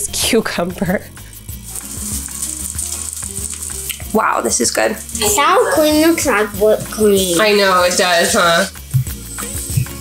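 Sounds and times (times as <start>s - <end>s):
food sizzling in a pan: 0.1s - 10.0s.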